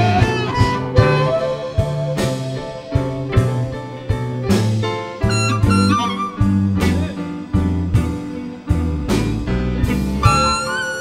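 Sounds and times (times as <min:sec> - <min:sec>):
amplified harmonica bent notes: 0:00.0 - 0:04.4, 0:05.2 - 0:07.5, 0:10.2 - 0:11.0
live blues band playing: 0:00.0 - 0:11.0.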